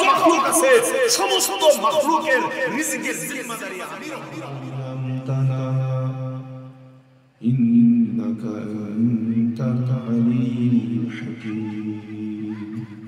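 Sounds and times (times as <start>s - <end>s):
man chanting at higher pitch: 0.0s - 6.8s, 7.4s - 12.9s.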